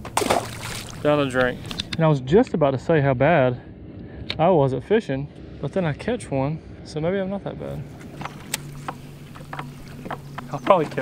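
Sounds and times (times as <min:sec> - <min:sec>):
electric trolling motor humming: 0:07.7 - 0:11.0.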